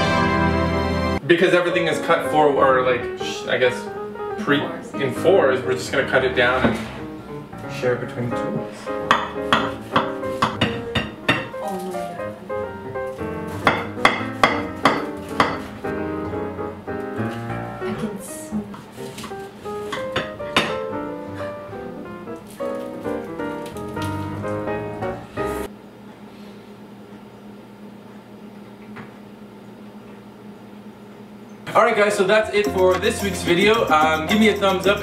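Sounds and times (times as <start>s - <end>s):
quick melody over a beat: 32.4s - 35.0s.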